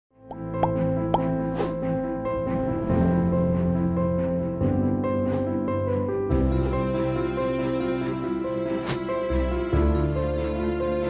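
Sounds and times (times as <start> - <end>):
rising plop sound effects: 0.3 - 1.8.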